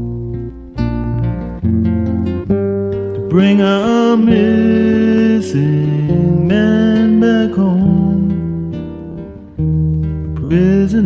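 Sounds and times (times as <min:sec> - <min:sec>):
strummed acoustic guitar: 0:00.0 - 0:11.0
person singing: 0:03.2 - 0:09.5, 0:10.2 - 0:11.0.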